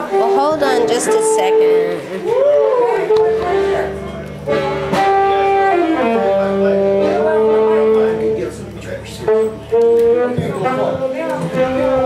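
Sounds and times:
live band music: 0.0s - 12.0s.

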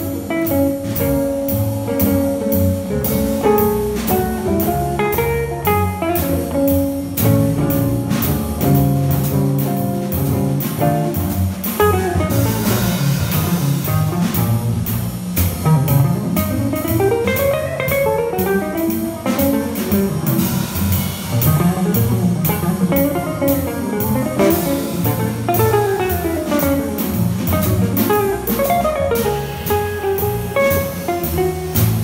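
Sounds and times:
drum kit cymbals: 0.0s - 32.0s
plucked double bass: 0.0s - 32.0s.

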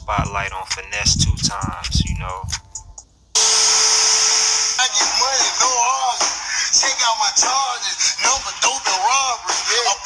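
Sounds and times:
person speaking: 0.0s - 2.9s
loud static hiss: 0.0s - 10.0s.

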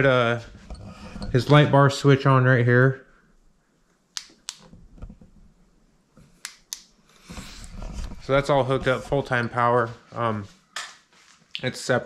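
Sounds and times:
light switch clicking: 4.2s - 4.7s.

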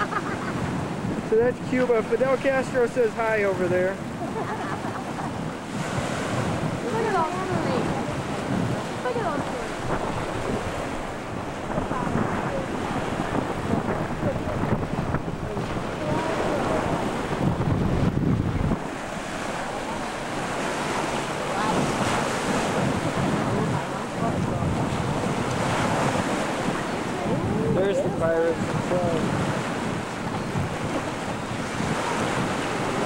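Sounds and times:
sea surf washing and lapping: 0.0s - 33.0s
wind buffeting microphone: 0.0s - 33.0s.

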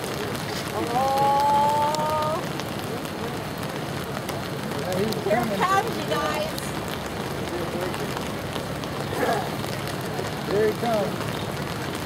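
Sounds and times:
faint voices: 0.0s - 11.3s
rain falling on gravel: 0.0s - 12.0s.

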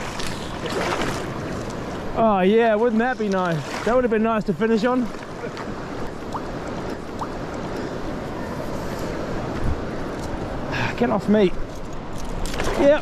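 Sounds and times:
river rushing: 0.0s - 9.6s.

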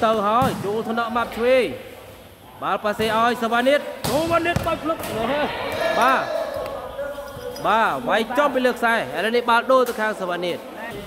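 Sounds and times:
ball hitting court: 0.2s - 1.0s, 4.0s - 6.0s.

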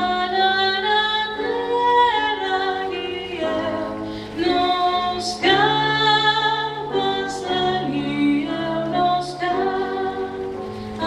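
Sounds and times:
voices singing in harmony: 0.0s - 11.0s
sharp sibilant hiss: 2.9s - 11.0s.

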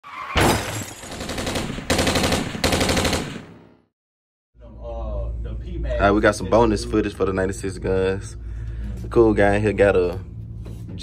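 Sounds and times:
automatic gunfire bursts: 1.1s - 3.6s.

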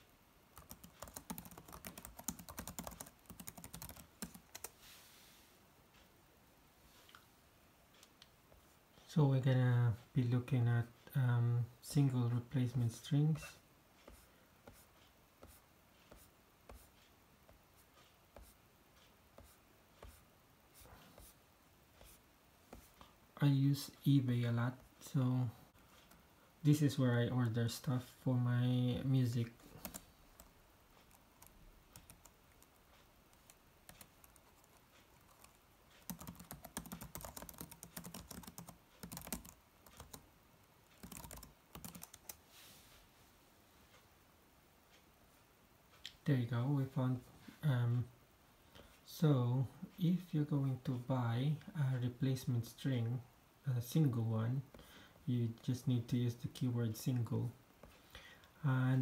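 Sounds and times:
computer mouse clicking: 0.6s - 4.7s, 29.8s - 40.2s, 41.0s - 42.4s.

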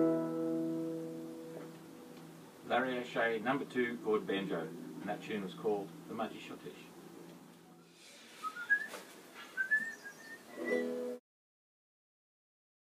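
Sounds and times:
short rising whistled notes: 8.4s - 11.2s.

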